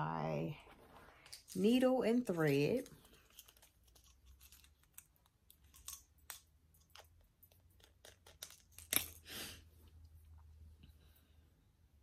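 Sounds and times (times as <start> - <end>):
crochet hooks clicking and rustling: 1.2 - 9.2.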